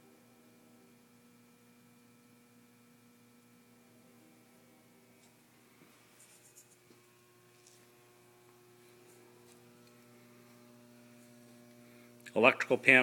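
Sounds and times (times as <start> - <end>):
faint mains hum: 0.0 - 13.0.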